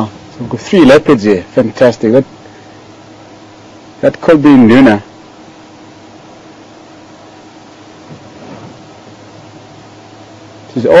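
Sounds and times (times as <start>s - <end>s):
faint hum: 0.0s - 11.0s
low hiss: 0.0s - 11.0s.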